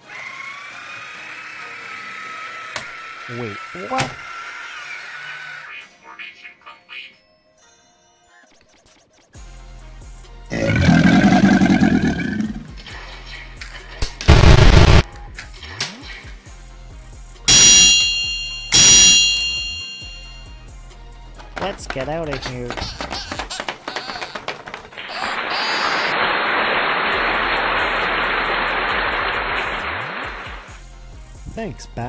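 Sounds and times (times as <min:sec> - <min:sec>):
toy electric motor whining: 0:00.0 - 0:05.6
background music: 0:05.6 - 0:25.1, 0:29.8 - 0:32.0
ringing metallic hits: 0:17.5 - 0:20.5.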